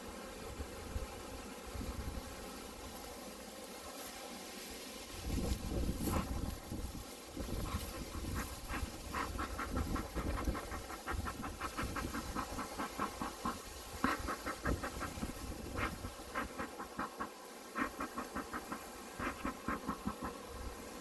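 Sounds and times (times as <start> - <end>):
bee swarm humming: 0.0 - 21.0
bellows puffing air: 7.5 - 20.4.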